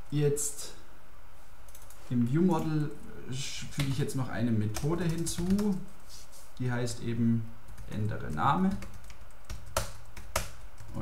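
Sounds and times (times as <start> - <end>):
computer keyboard keystrokes: 4.8 - 5.8, 7.7 - 11.0.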